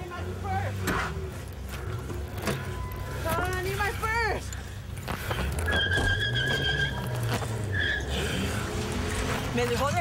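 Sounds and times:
car engine rumbling: 0:00.0 - 0:10.0.

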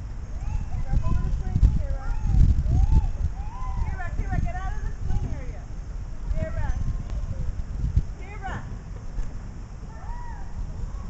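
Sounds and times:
low rumbling and thumps: 0:00.0 - 0:11.0
children calling out: 0:00.3 - 0:01.0, 0:01.7 - 0:04.1, 0:09.8 - 0:11.0.

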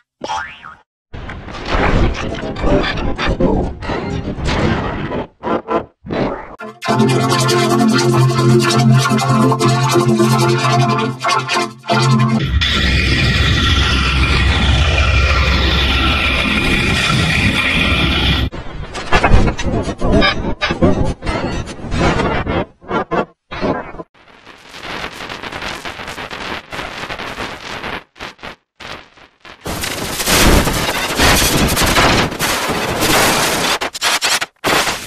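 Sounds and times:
distorted electronic noise: 0:06.6 - 0:18.5, 0:23.9 - 0:35.0
loud rough roar: 0:12.4 - 0:18.5.

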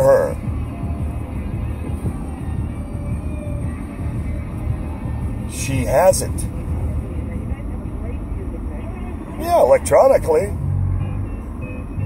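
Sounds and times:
car cabin rumble: 0:00.0 - 0:12.0.

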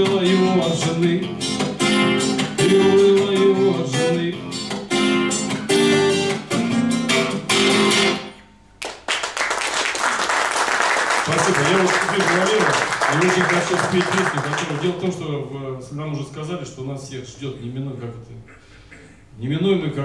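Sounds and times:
acoustic guitar strumming chords: 0:00.0 - 0:08.8
audience applause: 0:08.8 - 0:15.0.

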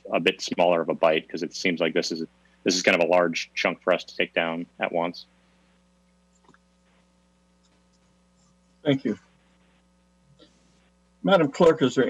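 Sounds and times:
man's voice: 0:00.0 - 0:05.2
faint electrical hum: 0:00.0 - 0:12.0.

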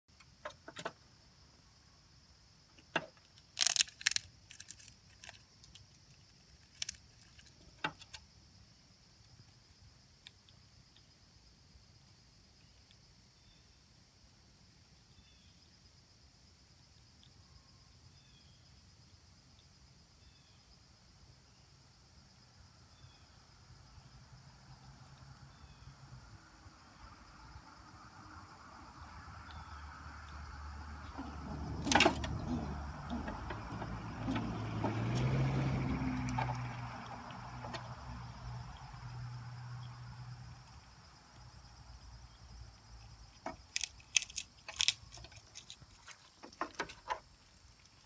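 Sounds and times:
faint bird chirps: 0:12.6 - 0:13.9, 0:14.9 - 0:15.9, 0:17.0 - 0:18.9, 0:19.6 - 0:20.8.

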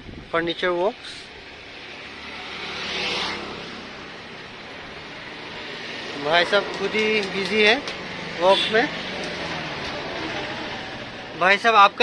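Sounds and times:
street background: 0:00.0 - 0:12.0
vehicle passing by: 0:01.6 - 0:11.4.

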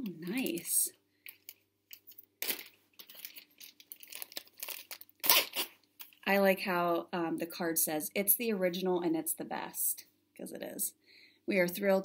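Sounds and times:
packaging crinkling and rustling: 0:00.3 - 0:06.2.

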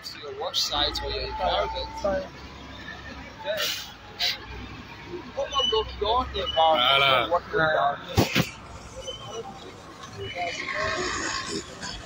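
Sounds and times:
street noise: 0:00.0 - 0:12.0
indistinct voices: 0:05.3 - 0:12.0.

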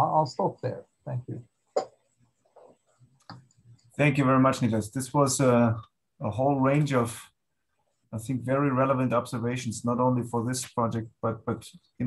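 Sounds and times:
quiet low sounds: 0:00.0 - 0:12.0.

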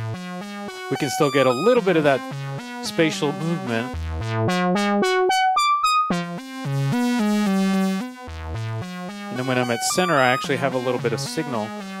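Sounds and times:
modular synthesizer sequenced notes: 0:00.0 - 0:12.0.

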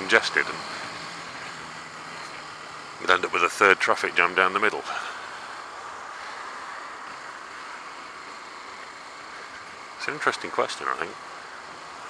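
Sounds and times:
motorcycle riding wind and road noise: 0:00.0 - 0:12.0.

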